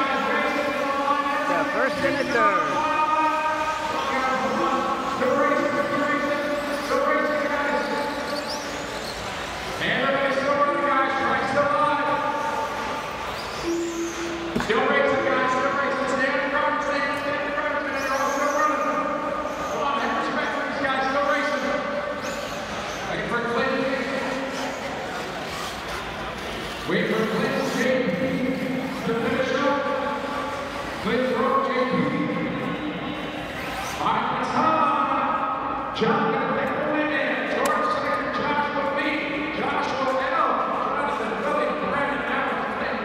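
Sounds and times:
man speaking over public address: 0.0s - 8.9s, 9.8s - 25.2s, 26.4s - 43.0s.

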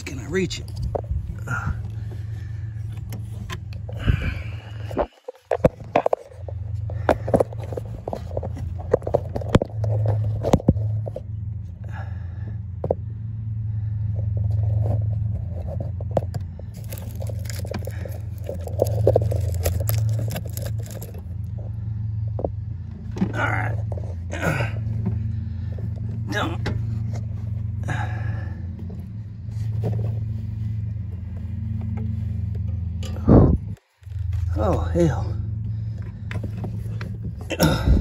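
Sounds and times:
hands scraping and rustling wire: 0.0s - 11.2s, 14.2s - 21.7s
steady low hum: 0.0s - 38.0s.

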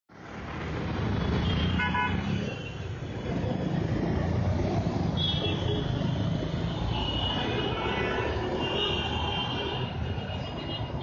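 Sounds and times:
street traffic rumble: 0.1s - 11.0s.

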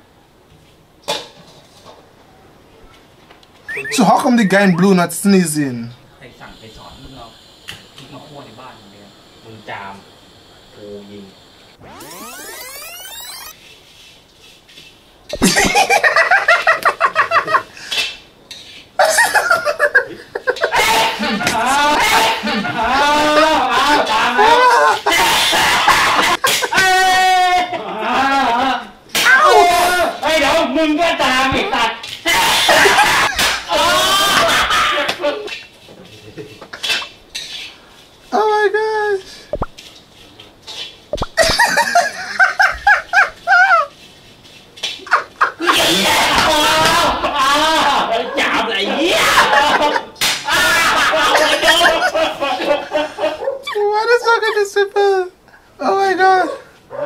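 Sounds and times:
man laughing hard: 15.4s - 17.7s, 19.0s - 25.2s, 49.2s - 53.8s.

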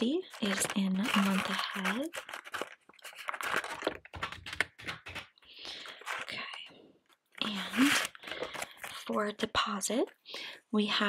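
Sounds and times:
soft paper rustle: 0.0s - 9.2s.

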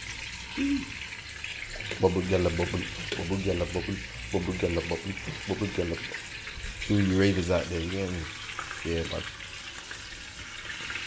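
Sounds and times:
food deep-frying in oil: 0.0s - 11.0s
short vocal sound: 0.6s - 0.9s.

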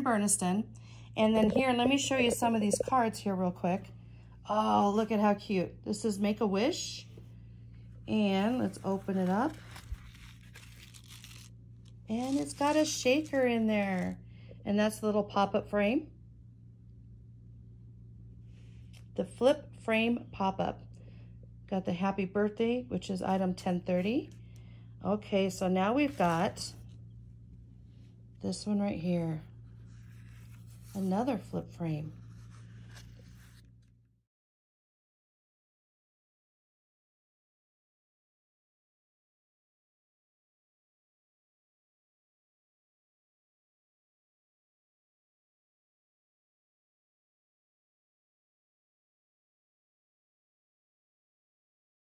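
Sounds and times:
low electrical hum: 0.0s - 34.2s
card stock rustling: 8.4s - 14.2s, 26.0s - 26.9s, 29.8s - 33.8s.

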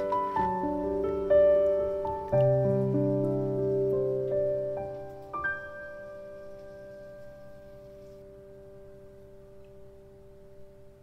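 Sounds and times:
piano notes ringing: 0.0s - 11.0s.

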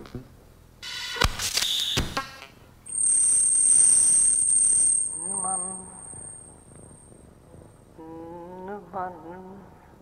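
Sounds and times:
high-pitched electronic tone: 2.9s - 7.1s
lower electronic tone: 2.9s - 7.2s.

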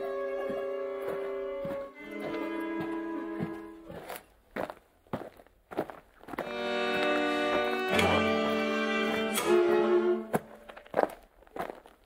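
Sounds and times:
footsteps on wet floor: 0.1s - 9.3s, 10.3s - 12.0s.

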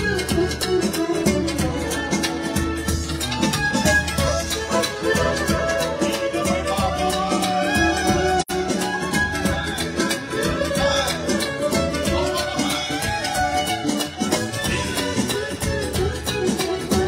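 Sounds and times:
bass drums beaten with mallets: 0.0s - 17.0s
violin melody: 1.6s - 17.0s.

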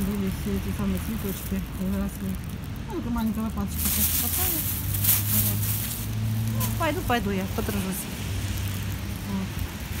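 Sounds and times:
low outdoor background rumble: 0.0s - 10.0s.

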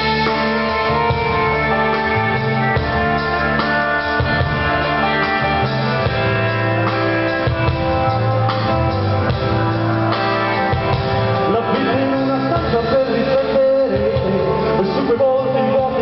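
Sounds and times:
rock band playing live: 0.0s - 16.0s
man singing: 11.3s - 16.0s.

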